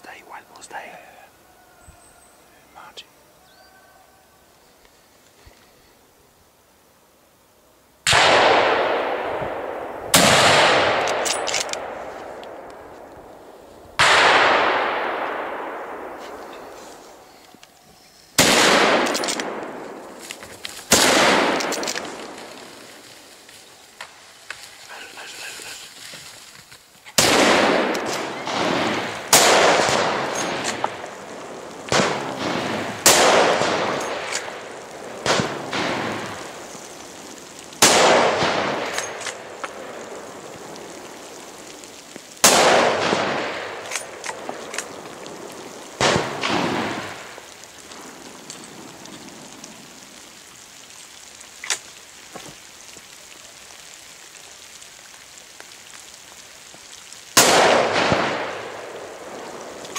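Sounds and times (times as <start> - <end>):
rifle shots echoing: 8.1 - 17.3, 18.4 - 23.0, 27.2 - 41.7, 42.4 - 49.1, 57.4 - 59.9.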